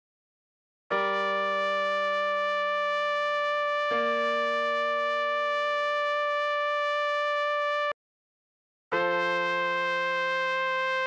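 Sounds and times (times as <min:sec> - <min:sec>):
electronic trumpet melody: 0:00.9 - 0:08.0, 0:09.0 - 0:11.0.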